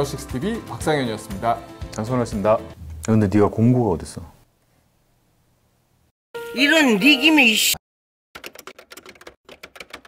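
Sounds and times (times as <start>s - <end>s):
keyboard typing clicks: 8.4s - 10.0s.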